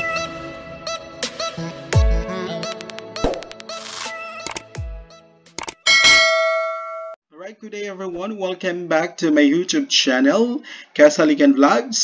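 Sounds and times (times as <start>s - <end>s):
bell ding: 5.8s - 7.2s.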